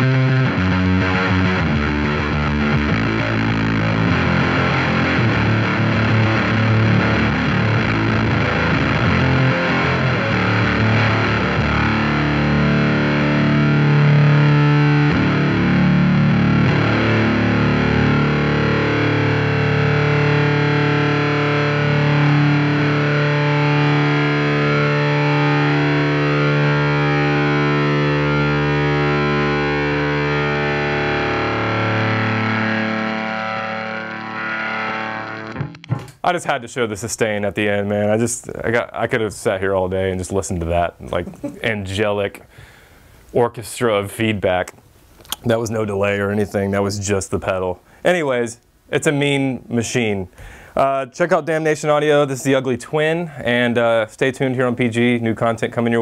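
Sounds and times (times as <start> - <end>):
bass feedback tones: 0.0 - 36.2
distorted electric bass: 0.0 - 36.2.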